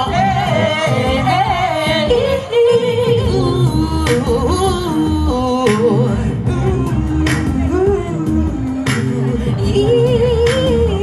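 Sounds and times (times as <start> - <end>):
backing track with bass: 0.0 - 11.0
woman singing live: 0.0 - 11.0.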